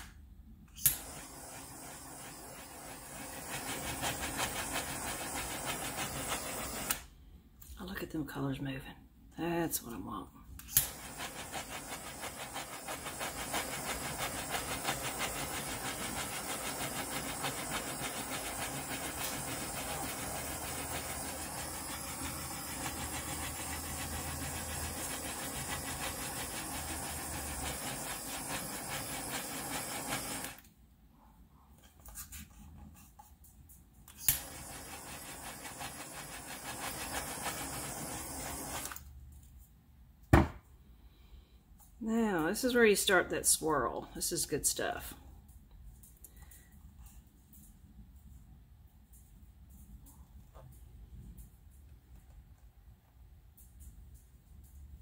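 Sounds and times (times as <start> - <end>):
heat gun fan whirring: 0.0 - 7.2, 10.6 - 30.7, 34.1 - 39.1.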